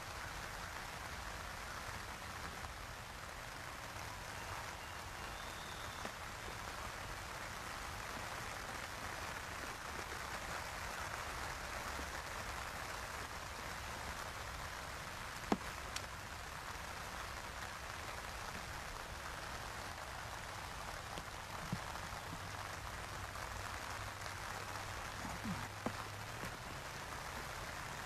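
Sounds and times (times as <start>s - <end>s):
even hiss: 0.0s - 28.0s.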